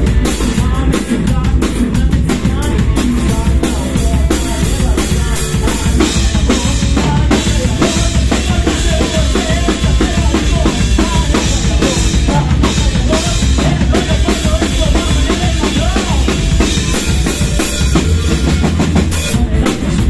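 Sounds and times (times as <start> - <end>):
man singing: 0.0 - 20.0
rock band playing: 0.0 - 20.0.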